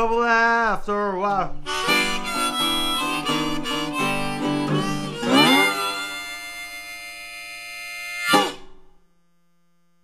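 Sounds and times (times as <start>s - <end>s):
harmonica holding long note: 1.6s - 9.0s.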